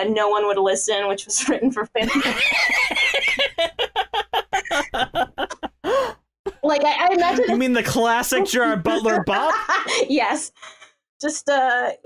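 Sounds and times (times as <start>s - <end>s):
person laughing: 2.0s - 6.2s, 7.2s - 10.1s.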